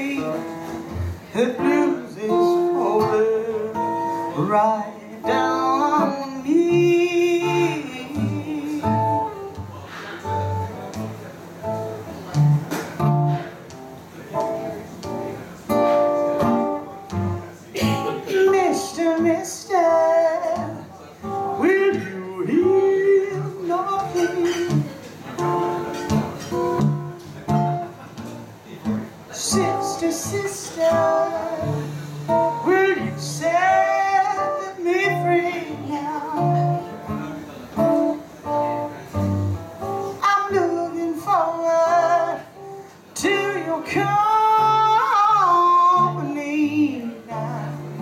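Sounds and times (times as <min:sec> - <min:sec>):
acoustic guitar picked and strummed: 0:00.0 - 0:48.0
woman singing: 0:01.4 - 0:03.7, 0:04.4 - 0:09.3, 0:18.3 - 0:20.8, 0:21.6 - 0:24.9, 0:29.4 - 0:32.0, 0:32.6 - 0:36.8, 0:40.2 - 0:42.5, 0:43.2 - 0:48.0.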